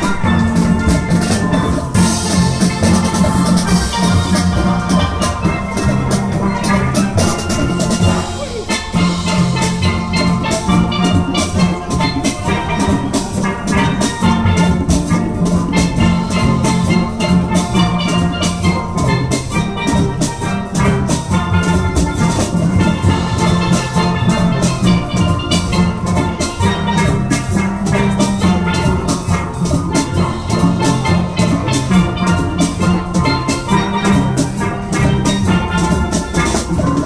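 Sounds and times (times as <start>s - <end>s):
drums keeping steady beat: 0.0s - 37.0s
steel pans playing melody: 0.0s - 37.0s.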